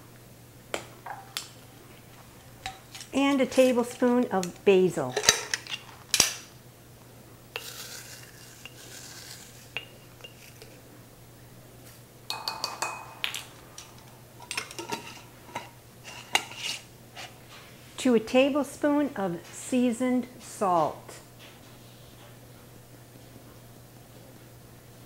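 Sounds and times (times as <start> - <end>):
rustle of dried herbs: 7.6 - 10.8
spoon clinking on glass: 9.7 - 10.6, 12.3 - 13.1.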